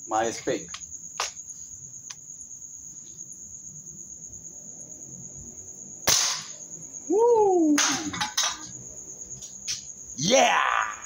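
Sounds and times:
crickets chirping: 0.0s - 11.0s
gunshot: 6.0s - 6.6s, 7.8s - 8.2s.

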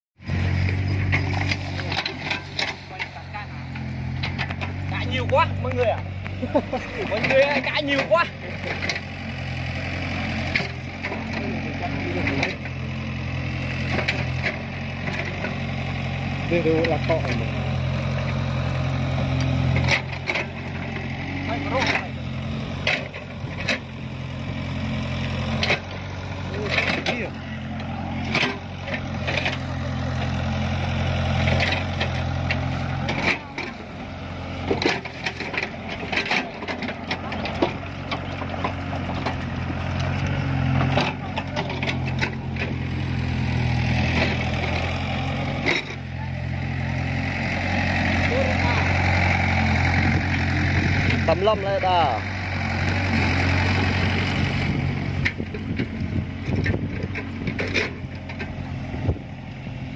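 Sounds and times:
low mechanical hum: 0.3s - 59.9s.

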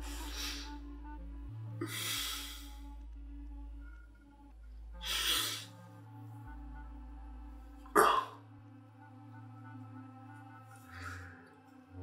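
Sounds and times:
low held music notes: 0.0s - 12.0s
man coughing: 8.0s - 8.4s.

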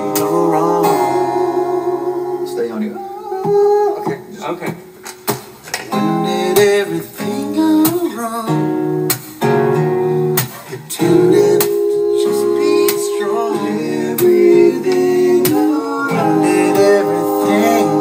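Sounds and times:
man singing: 0.0s - 4.4s, 5.9s - 8.8s, 10.7s - 18.0s
strummed acoustic guitar: 0.0s - 18.0s.

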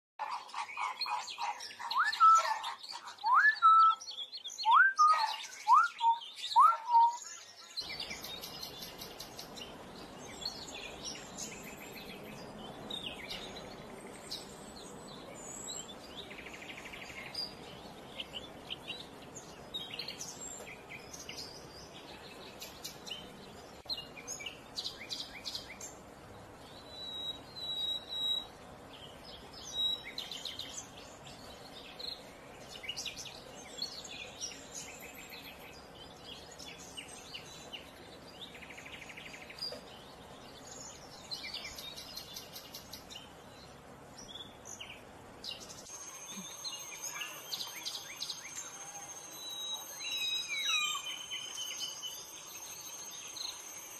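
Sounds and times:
outdoor background: 0.2s - 53.9s.

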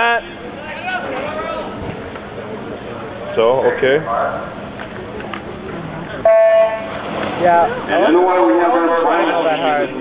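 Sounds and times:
crowd murmur: 0.0s - 10.0s
starting horn beep: 6.2s - 7.0s.

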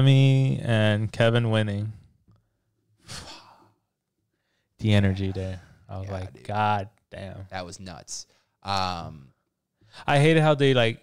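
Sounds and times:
man sighing: 3.0s - 3.8s.

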